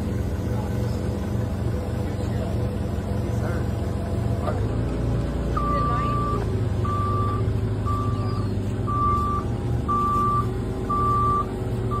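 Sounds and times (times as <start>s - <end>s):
diesel engine running: 0.0s - 12.0s
back-up alarm beeping: 5.6s - 12.0s.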